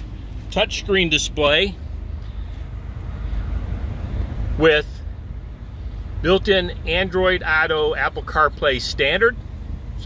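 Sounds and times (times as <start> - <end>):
low rumble in van cab: 0.0 - 10.0.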